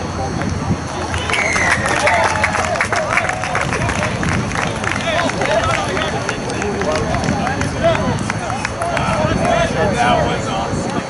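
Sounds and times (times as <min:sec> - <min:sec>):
players shouting: 0:01.0 - 0:11.0.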